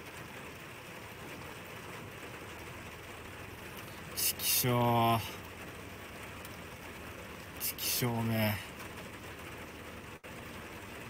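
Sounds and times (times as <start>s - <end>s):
steady hiss of rain: 0.0s - 11.0s.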